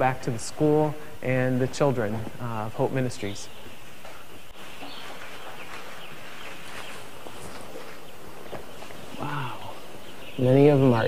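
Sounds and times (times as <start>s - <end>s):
chicks peeping: 1.8s - 11.0s.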